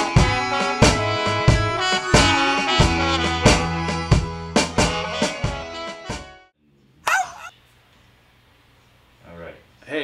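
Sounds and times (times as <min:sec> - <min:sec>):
high-pitched yelp: 0:07.0 - 0:07.6.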